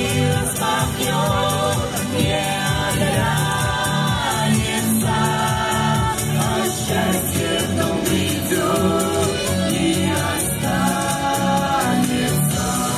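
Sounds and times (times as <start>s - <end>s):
musical accompaniment with bass: 0.0s - 12.9s
vocal quartet singing in harmony: 0.0s - 12.9s.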